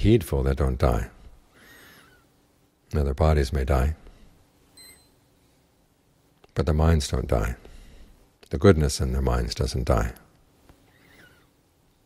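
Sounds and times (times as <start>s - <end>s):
short high-pitched beep: 4.8s - 5.2s.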